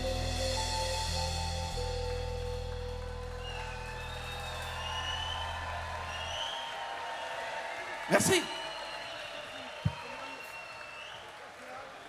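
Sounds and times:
crowd cheering: 2.9s - 12.0s.

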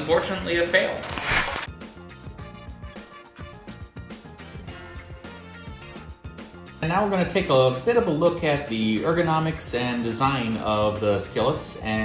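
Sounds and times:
background music with steady beat: 1.7s - 12.0s.

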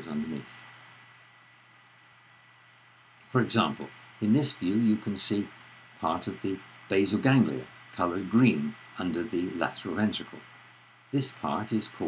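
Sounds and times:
recording hiss: 0.0s - 12.0s.

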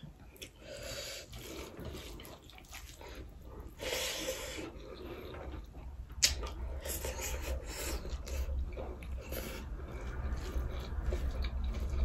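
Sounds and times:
low steady hum: 0.0s - 12.0s
close chewing mouth sounds: 1.2s - 12.0s.

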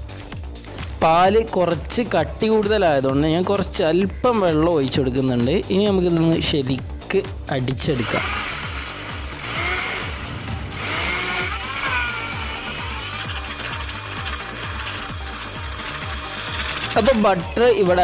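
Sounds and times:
background music with beat: 0.0s - 18.0s
person speaking: 7.5s - 8.5s, 16.7s - 18.0s
electric blender running: 8.0s - 17.6s.

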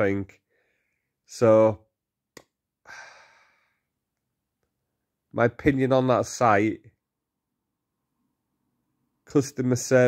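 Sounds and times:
man sighing: 2.8s - 3.7s.

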